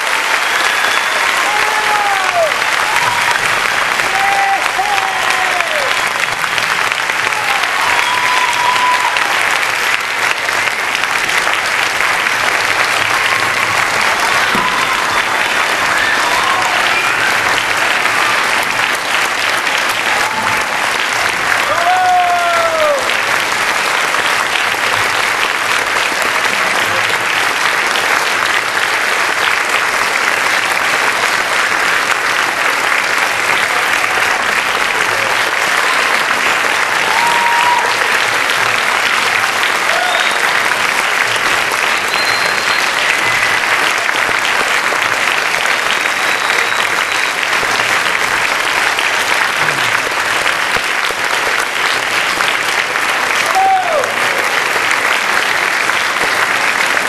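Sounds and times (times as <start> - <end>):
audience applauding: 0.0 - 57.0
audience cheering: 0.0 - 57.0.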